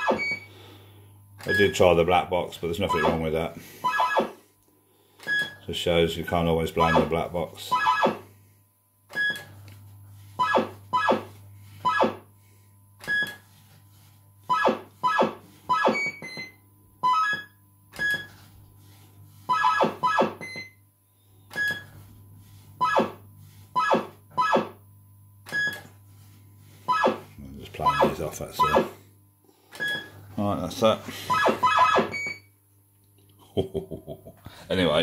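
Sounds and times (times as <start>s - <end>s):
fruit machine bleeps: 0.0s - 0.6s, 1.4s - 1.8s, 2.8s - 4.3s, 5.2s - 5.6s, 6.8s - 8.2s, 9.1s - 9.5s, 10.4s - 12.2s, 13.1s - 13.4s, 14.5s - 18.4s, 19.5s - 20.8s, 21.4s - 22.0s, 22.8s - 24.8s, 25.5s - 25.9s, 26.8s - 29.0s, 29.8s - 30.2s, 31.3s - 32.5s
low electrical hum: 0.0s - 35.0s.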